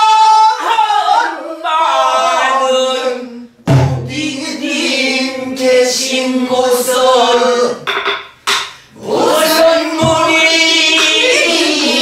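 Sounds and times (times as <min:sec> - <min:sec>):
voices singing in unison: 0:00.0 - 0:08.0, 0:08.8 - 0:12.0.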